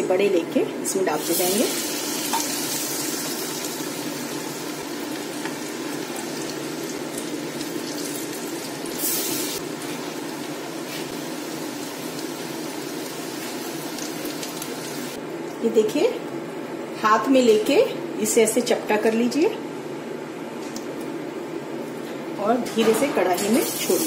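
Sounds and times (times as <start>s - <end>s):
food sizzling in hot oil: 1.1s - 15.2s, 23.6s - 24.0s.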